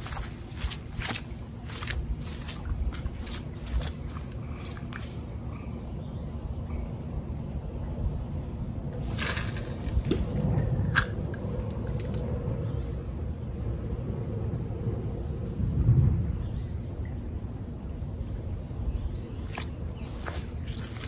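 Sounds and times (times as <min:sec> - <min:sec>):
wind buffeting microphone: 0:00.0 - 0:05.8, 0:07.6 - 0:21.0.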